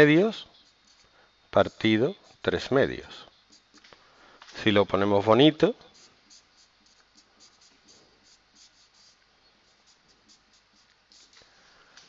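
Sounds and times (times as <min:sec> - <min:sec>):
marker pen on whiteboard: 0:00.5 - 0:02.4, 0:03.1 - 0:03.9, 0:05.8 - 0:11.5.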